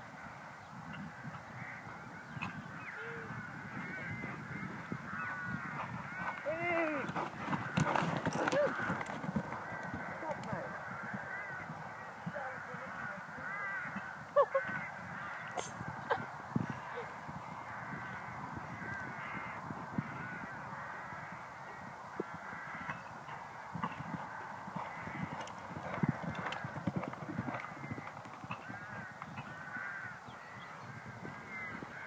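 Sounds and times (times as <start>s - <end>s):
birds calling: 0.2s - 32.0s
horse cantering on sand: 4.0s - 14.1s, 22.4s - 30.1s.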